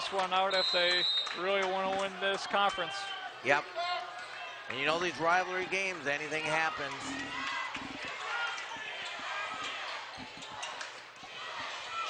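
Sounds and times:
crowd chatter: 1.9s - 12.0s.

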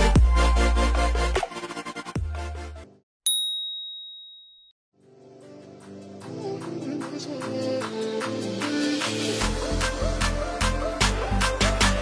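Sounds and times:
high bell-like timer ding: 3.3s - 4.7s.

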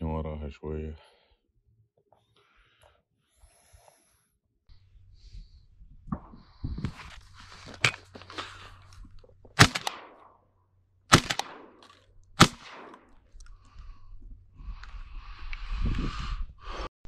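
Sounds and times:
rustling: 6.8s - 9.7s
shotgun shots: 9.6s - 10.3s, 11.1s - 13.2s.

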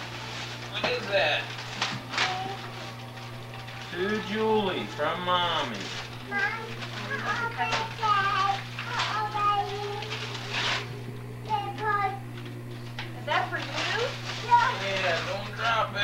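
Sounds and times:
steady low hum: 0.0s - 16.0s
young children babbling: 6.2s - 10.2s.

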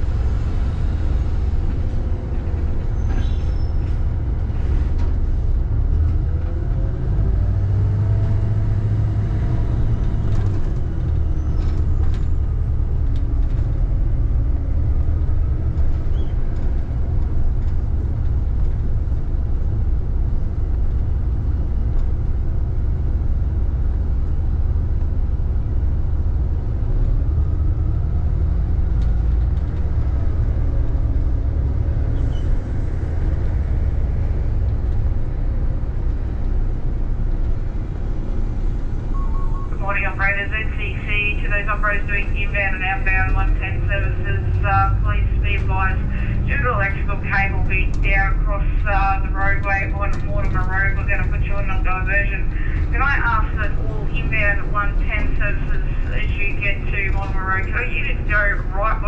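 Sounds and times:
bus engine rumbling: 0.0s - 59.0s
electronic chirping radio tones: 39.2s - 44.0s.

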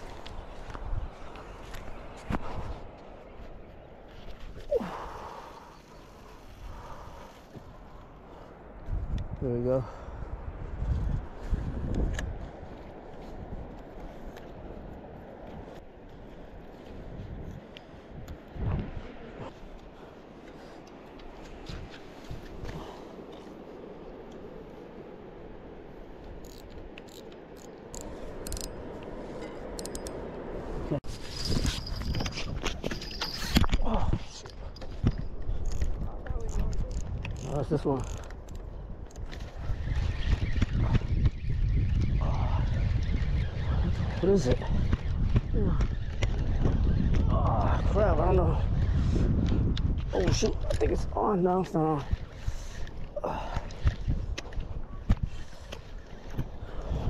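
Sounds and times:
outdoor background: 0.0s - 57.0s
fishing rod bell jingling: 29.7s - 30.4s, 31.2s - 33.8s.

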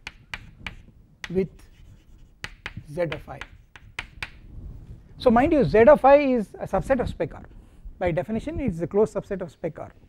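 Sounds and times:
chalk tapping on blackboard: 0.0s - 4.4s.

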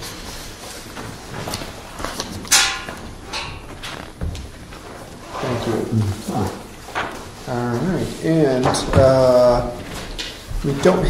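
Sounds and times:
pages turning: 0.3s - 11.0s.

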